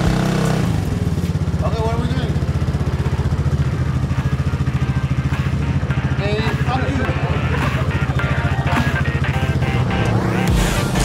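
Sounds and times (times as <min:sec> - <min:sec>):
small engine idling: 0:00.0 - 0:11.0
background music: 0:02.8 - 0:11.0.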